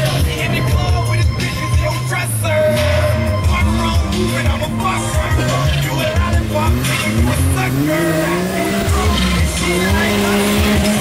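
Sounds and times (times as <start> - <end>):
off-road vehicle engine revving: 0.0 - 11.0.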